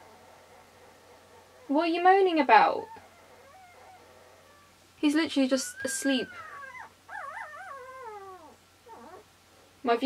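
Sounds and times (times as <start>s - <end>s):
puppy whining: 0.0s - 4.8s, 5.6s - 9.7s.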